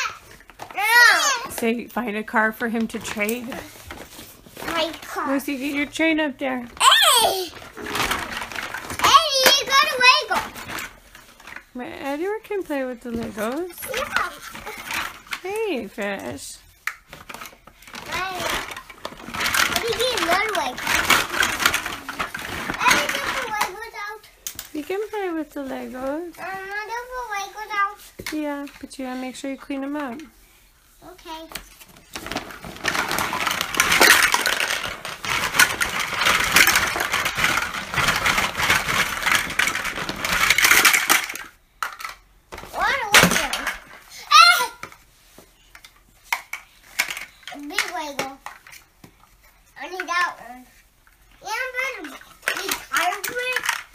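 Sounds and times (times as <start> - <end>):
plastic toy blocks clattering: 0.0 - 6.0, 6.7 - 30.3, 31.8 - 45.0, 45.7 - 48.9, 49.8 - 50.7, 51.4 - 53.9.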